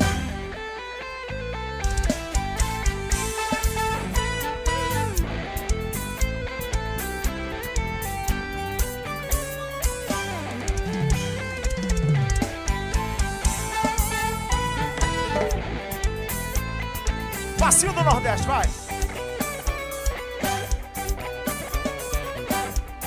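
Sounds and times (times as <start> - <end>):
bass guitar: 0.0 - 23.0
electric guitar: 0.0 - 23.0
drum kit beat: 1.9 - 23.0.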